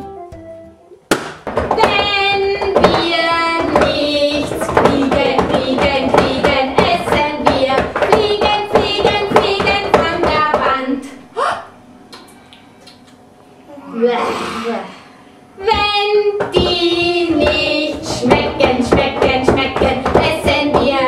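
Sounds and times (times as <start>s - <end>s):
instrumental background music: 0.0s - 1.3s
hands clapping in rhythm: 1.1s - 1.8s
children and women singing: 1.7s - 11.0s, 15.6s - 21.0s.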